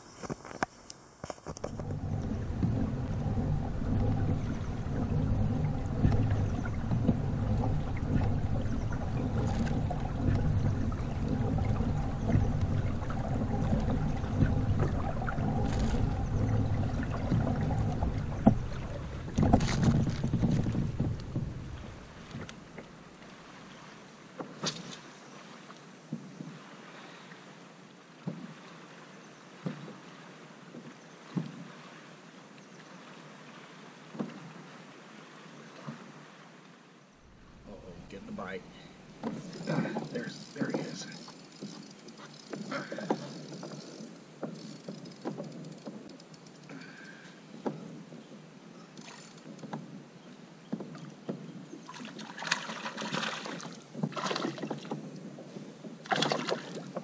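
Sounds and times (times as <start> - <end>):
quiet water sounds: 0.0 - 57.0
low rumbling on microphone: 1.7 - 22.8.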